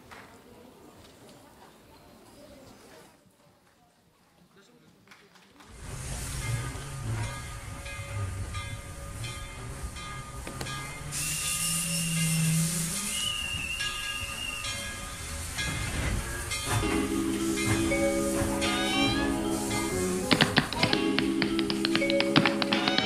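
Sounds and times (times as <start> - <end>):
steam hiss: 5.7 - 22.4
train wheels clattering: 5.7 - 23.0
high steam whistle: 5.8 - 20.3
dance music: 16.9 - 23.0.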